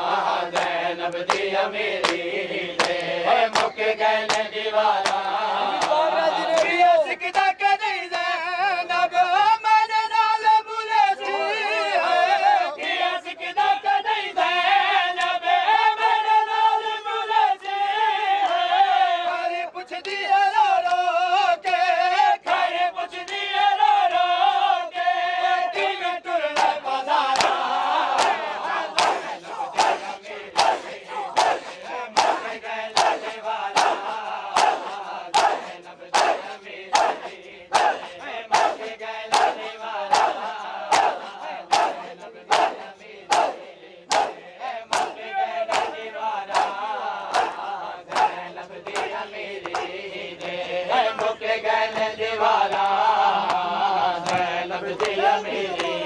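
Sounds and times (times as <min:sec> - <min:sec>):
crowd chanting: 0:00.0 - 0:09.6, 0:10.2 - 0:56.0
men slapping bare chests: 0:00.5 - 0:07.6, 0:15.2 - 0:15.4, 0:19.9 - 0:23.6, 0:26.5 - 0:56.0.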